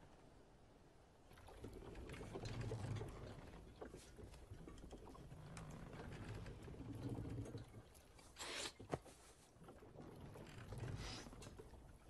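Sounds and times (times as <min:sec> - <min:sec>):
rowboat creaking and knocking: 0:01.6 - 0:08.2, 0:08.8 - 0:12.0.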